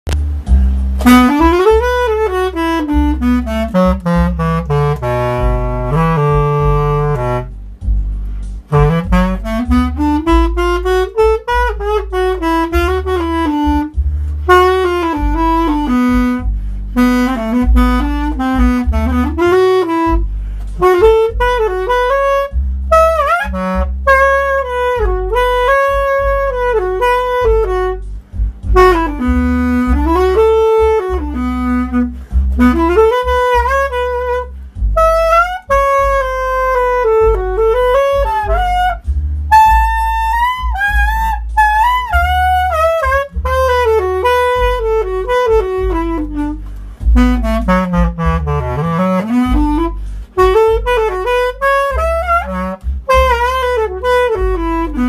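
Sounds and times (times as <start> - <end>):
backing track with bass line: 0.0 - 55.0.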